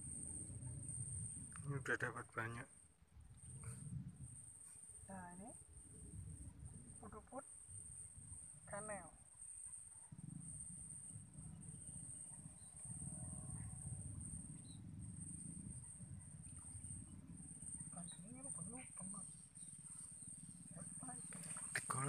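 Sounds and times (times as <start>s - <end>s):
faint distant voices: 1.6s - 2.7s, 20.8s - 22.0s
steady low rumble: 10.1s - 22.0s
high-pitched whine: 21.3s - 22.0s.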